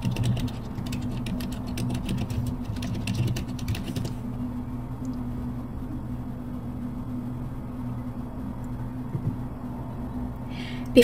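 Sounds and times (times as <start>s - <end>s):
computer keyboard typing: 0.0s - 4.2s.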